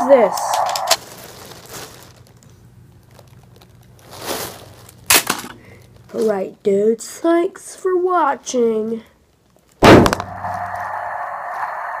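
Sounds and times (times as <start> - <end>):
steady buzzing hum: 9.8 - 12.0.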